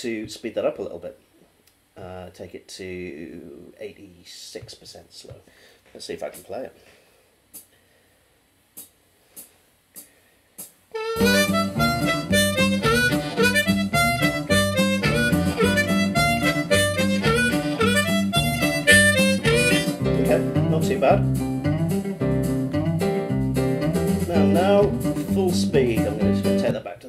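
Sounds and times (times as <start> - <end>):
blues backing track: 8.8 - 27.0
blues harmonica with bent notes: 10.9 - 26.7.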